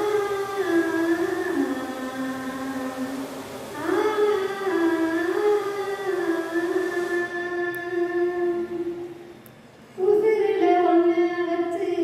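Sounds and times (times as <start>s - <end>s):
woman singing long held notes: 0.0s - 9.2s.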